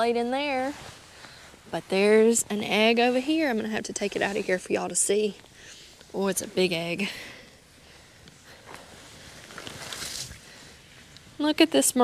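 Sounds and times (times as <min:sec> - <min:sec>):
hay rustling and crackling: 0:08.6 - 0:10.7.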